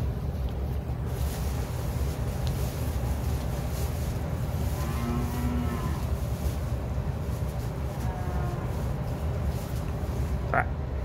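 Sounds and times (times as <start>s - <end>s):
calf mooing: 4.8s - 6.1s, 8.0s - 8.7s.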